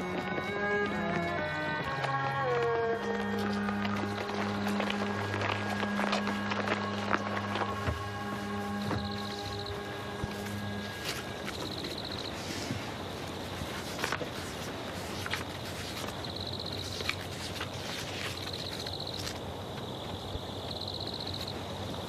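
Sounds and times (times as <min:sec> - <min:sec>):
film score music with held notes: 0:00.0 - 0:12.4
footsteps on stone path: 0:00.0 - 0:22.0.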